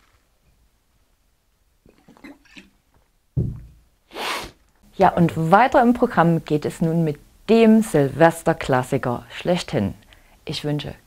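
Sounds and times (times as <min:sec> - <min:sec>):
bottle thudding on wooden bench: 0:03.4 - 0:03.8
short breathy hiss: 0:04.1 - 0:04.6.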